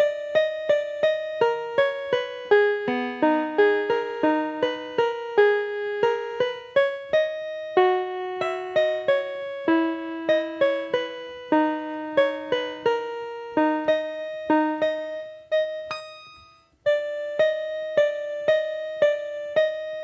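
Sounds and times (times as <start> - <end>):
slow piano melody: 0.0 - 20.0.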